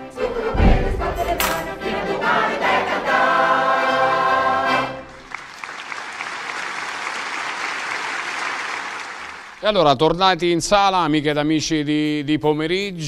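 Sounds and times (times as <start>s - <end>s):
folk choir singing: 0.0s - 5.3s
audience applause: 5.1s - 9.7s.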